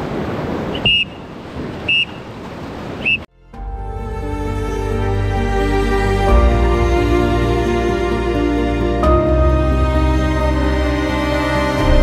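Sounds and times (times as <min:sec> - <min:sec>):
soft music: 0:03.3 - 0:12.0.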